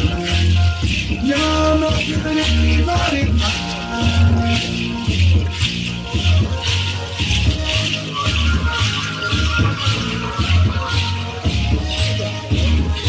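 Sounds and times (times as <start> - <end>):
dance music: 0.0 - 13.0
low repeating beat: 0.0 - 13.0
rattles shaken in rhythm: 0.0 - 13.0.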